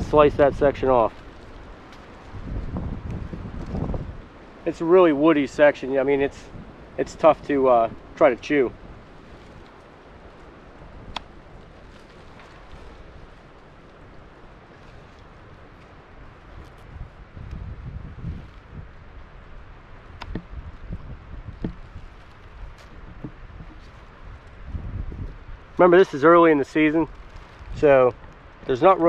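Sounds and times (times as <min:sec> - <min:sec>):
faint outdoor ambience: 0:00.0 - 0:29.0
wind rumble on microphone: 0:00.0 - 0:29.0.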